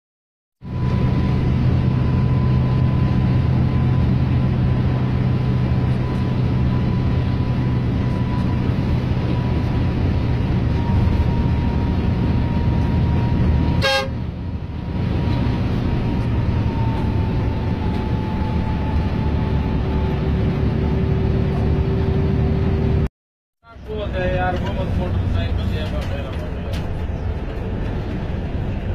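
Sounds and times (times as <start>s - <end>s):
coach engine running: 0.6s - 23.1s, 23.7s - 28.9s.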